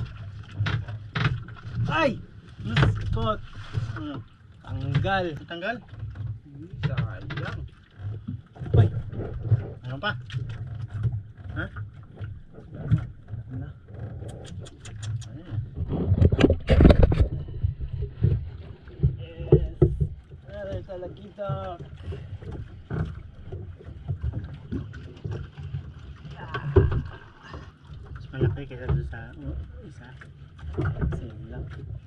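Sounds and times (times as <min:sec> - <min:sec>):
boat engine low rumble: 0:00.0 - 0:32.0
water sounds: 0:00.0 - 0:32.0
sharp clicks: 0:14.2 - 0:15.3
loud thump or splash: 0:15.8 - 0:18.5.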